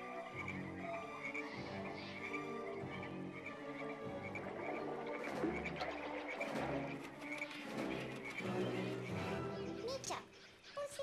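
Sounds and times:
frog-like croaking: 0:00.0 - 0:07.0
soft instrumental music: 0:00.0 - 0:10.4.

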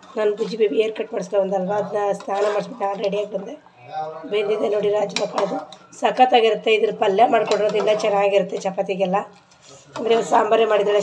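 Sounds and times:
metal ladle stirring in pot: 0:00.0 - 0:03.3, 0:07.2 - 0:10.5
ladle clinking against pot: 0:05.0 - 0:05.9, 0:07.4 - 0:08.7.

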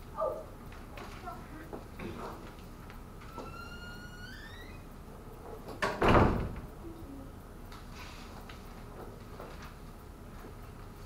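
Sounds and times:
rising squeak: 0:03.3 - 0:04.8.

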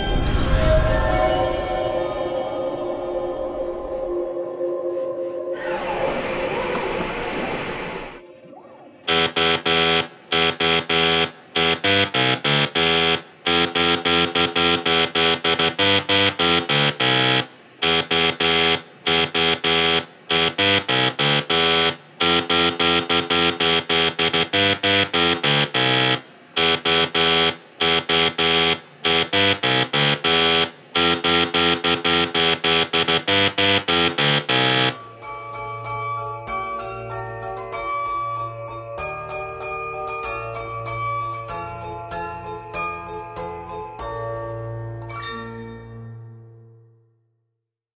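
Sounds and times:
short noisy swell: 0:00.0 - 0:09.1
buzzy electronic melody: 0:00.0 - 0:35.4.

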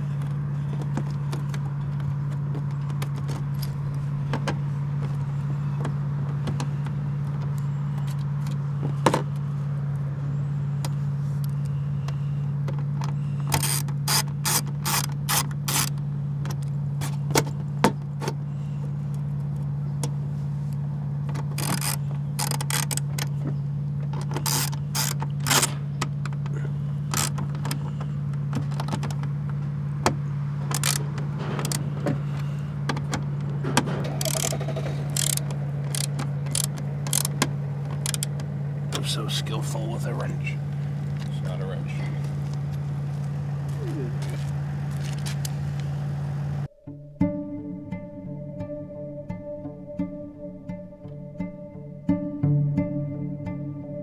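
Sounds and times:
low hum: 0:00.0 - 0:54.0
ratchet clicking: 0:13.5 - 0:16.0, 0:21.5 - 0:23.2, 0:24.3 - 0:25.7, 0:27.1 - 0:27.5, 0:30.7 - 0:31.0, 0:34.0 - 0:37.4, 0:38.0 - 0:38.4.

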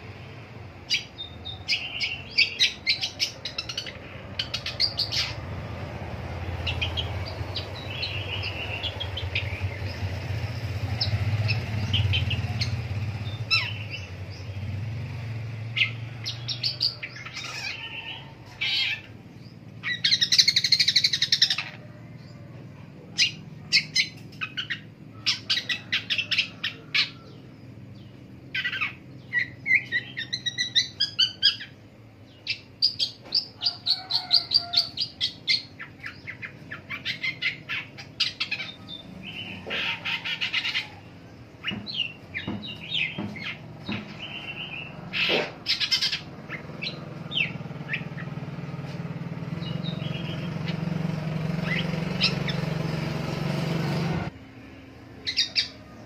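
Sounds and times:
harsh scratchy bird calls: 0:00.8 - 0:14.7, 0:15.7 - 0:56.0
bird singing chattering song: 0:00.8 - 0:56.0.

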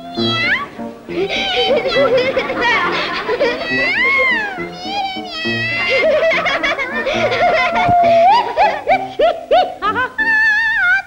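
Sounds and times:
piano accompaniment: 0:00.0 - 0:10.2.

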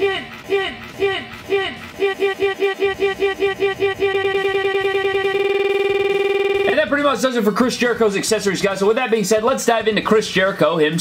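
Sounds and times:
man speaking: 0:00.0 - 0:04.6, 0:06.6 - 0:11.0
looped spoken syllable stutter: 0:00.0 - 0:11.0
electronic buzzing tone: 0:01.9 - 0:06.9.

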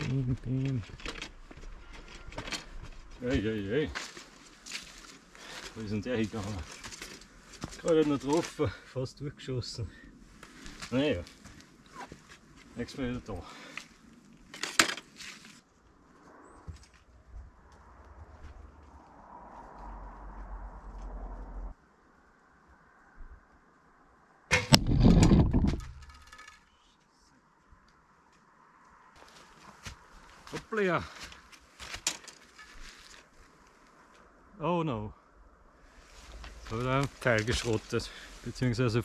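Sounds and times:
loud low jolt noise: 0:24.5 - 0:26.3
arrow striking tripod: 0:24.5 - 0:26.4.

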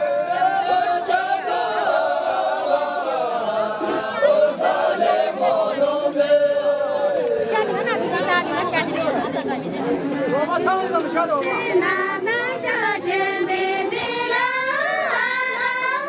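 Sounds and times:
women singing unaccompanied: 0:00.0 - 0:09.4, 0:11.3 - 0:16.0
voices chattering: 0:00.0 - 0:16.0.

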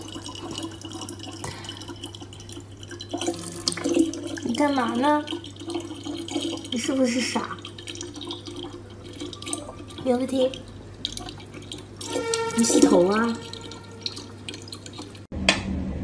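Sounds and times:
tap water running into bottle: 0:00.0 - 0:15.3.

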